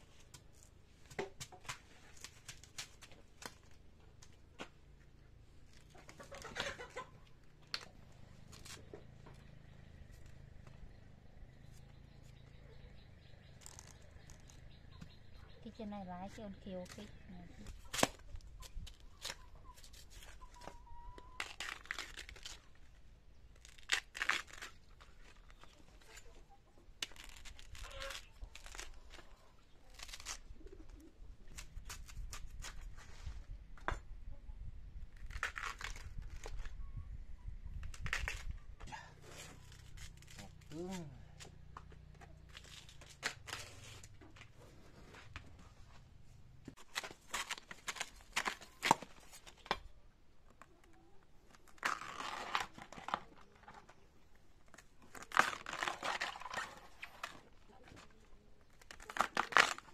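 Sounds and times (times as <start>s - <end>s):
husk sheaths tearing and crackling: 1.6s - 4.7s, 5.6s - 9.0s, 13.2s - 15.2s, 17.6s - 33.1s, 35.1s - 36.8s, 37.8s - 46.0s, 46.7s - 59.9s.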